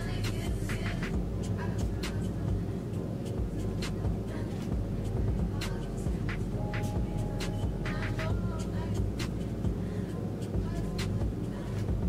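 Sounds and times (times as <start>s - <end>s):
low rumble and hum: 0.0s - 12.0s.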